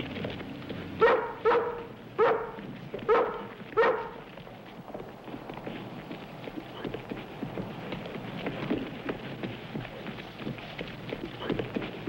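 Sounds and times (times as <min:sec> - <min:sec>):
dog barking: 0:01.0 - 0:04.2.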